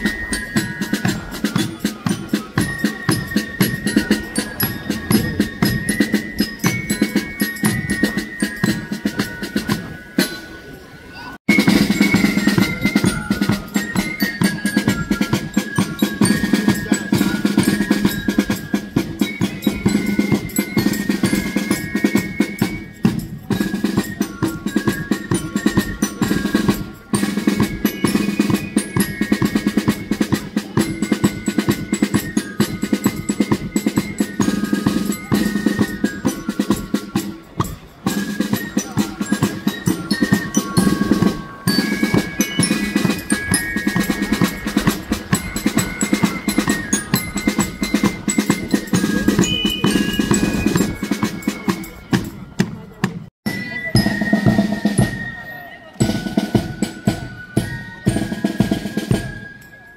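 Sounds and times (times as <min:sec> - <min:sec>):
snare drums: 0:00.0 - 0:10.7, 0:11.5 - 0:55.4, 0:56.0 - 0:59.8
flute melody: 0:00.0 - 0:52.8, 0:53.4 - 0:59.9
bell lyre: 0:00.0 - 0:59.9.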